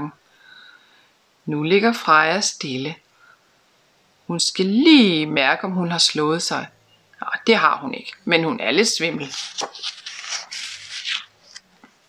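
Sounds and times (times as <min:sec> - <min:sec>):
book pages turning: 0:08.9 - 0:12.0.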